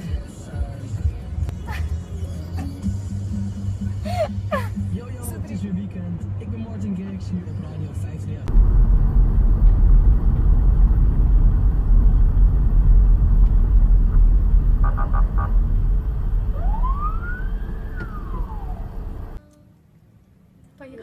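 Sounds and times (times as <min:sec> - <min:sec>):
car rumble from inside: 0:00.2 - 0:19.4
wailing tone: 0:16.5 - 0:19.1.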